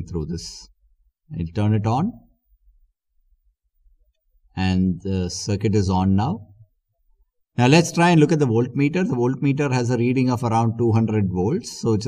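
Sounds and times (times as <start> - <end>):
man speaking: 0.0 - 2.4, 4.5 - 6.6, 7.5 - 12.0.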